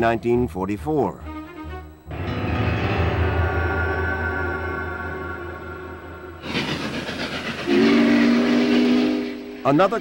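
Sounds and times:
steam whistle chord: 1.2s - 10.0s
steam locomotive hissing: 2.9s - 10.0s.

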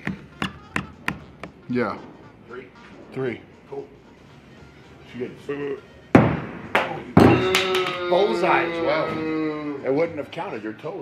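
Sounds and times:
axe hitting wooden target: 6.2s - 8.0s.

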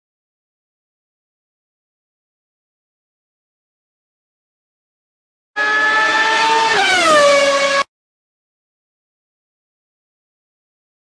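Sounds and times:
race car engine passing by: 5.6s - 7.9s.

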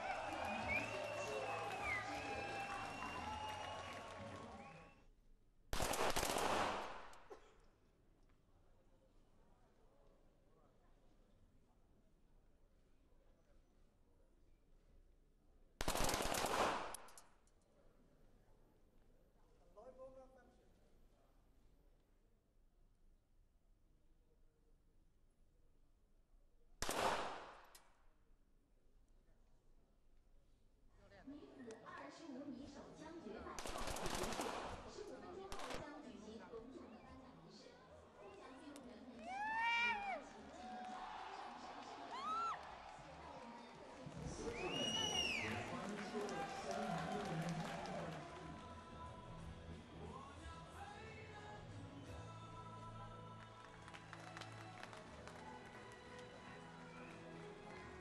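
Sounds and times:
crowd cheering: 0.0s - 5.0s, 38.1s - 50.3s, 53.1s - 58.0s
pistol shot ringing in hall: 5.7s - 7.3s, 15.8s - 17.2s, 26.8s - 27.8s
pistol shots echoing: 5.8s - 7.2s.

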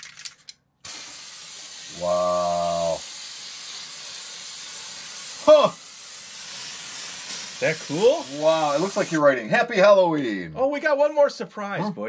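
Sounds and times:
aerosol can rattling: 0.0s - 2.0s, 3.0s - 9.2s
aerosol spray hiss: 0.8s - 9.2s.

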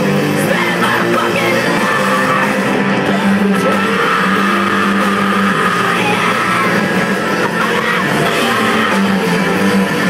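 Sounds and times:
distorted electric guitars chord: 0.0s - 10.0s
loud live rock band: 0.0s - 10.0s.

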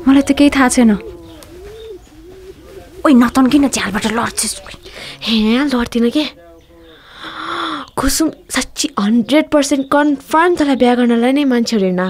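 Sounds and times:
faint low cooing: 0.0s - 8.5s
person speaking quickly: 2.4s - 8.9s.

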